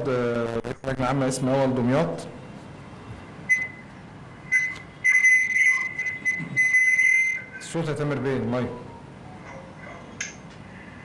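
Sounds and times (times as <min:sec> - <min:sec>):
high-pitched electronic whistle: 0:03.5 - 0:03.8, 0:04.5 - 0:07.6.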